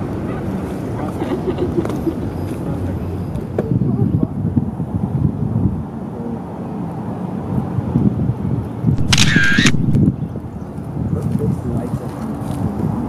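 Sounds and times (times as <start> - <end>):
camera motor winding film: 9.0 - 10.0
camera shutter firing: 9.0 - 10.1.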